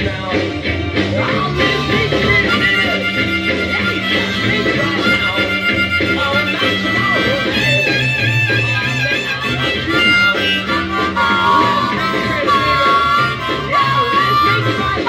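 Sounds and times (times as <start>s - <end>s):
band with bass and drums: 0.0s - 15.0s
blues harmonica: 0.0s - 15.0s.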